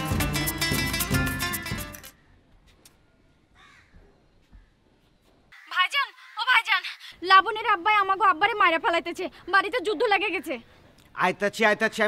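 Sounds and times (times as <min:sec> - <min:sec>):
faint bird call: 0:03.5 - 0:06.4.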